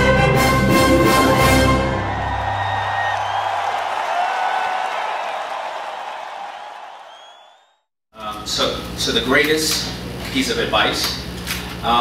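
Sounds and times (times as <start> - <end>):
orchestral music: 0.0 - 3.0
crowd applauding and cheering: 1.0 - 7.9
rising whistles: 2.0 - 5.6, 6.5 - 7.8.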